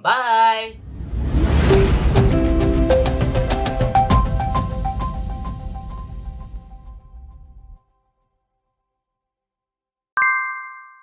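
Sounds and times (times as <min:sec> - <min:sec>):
notification bell ding: 0:10.2 - 0:11.0.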